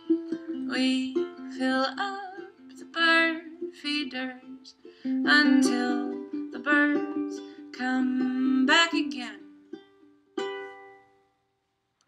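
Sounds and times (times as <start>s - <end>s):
ukulele strum: 0.0s - 11.2s.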